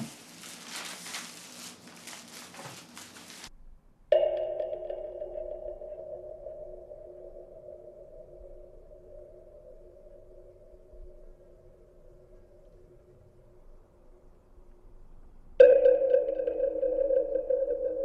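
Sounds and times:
rustling noise: 0:00.0 - 0:03.5
low sustained drone: 0:04.1 - 0:18.0.

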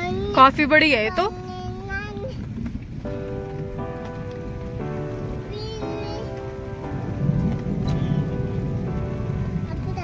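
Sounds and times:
steady rain falling: 0:00.0 - 0:10.0
music of held chords: 0:02.9 - 0:10.0.

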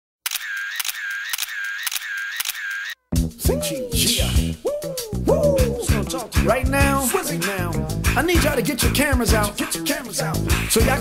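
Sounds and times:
camera shutter clicks: 0:00.3 - 0:03.0.

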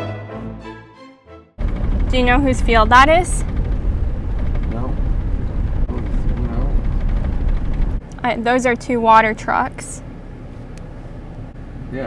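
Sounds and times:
wind buffeting microphone: 0:01.6 - 0:09.2.

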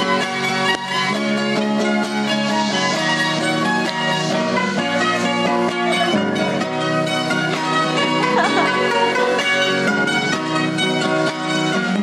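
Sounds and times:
acoustic guitar strummed and plucked: 0:00.0 - 0:12.0
plucked string instruments: 0:00.0 - 0:12.0.

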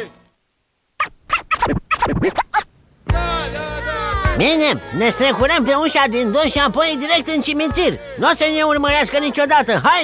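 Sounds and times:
record scratch effects: 0:01.0 - 0:03.2.

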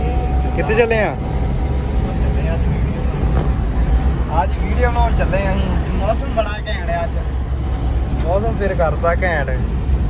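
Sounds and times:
car cabin road and engine rumble: 0:00.0 - 0:10.0.

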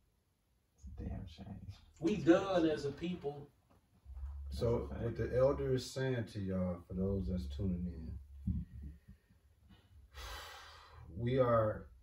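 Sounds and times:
man inhaling sharply: 0:10.1 - 0:11.1.

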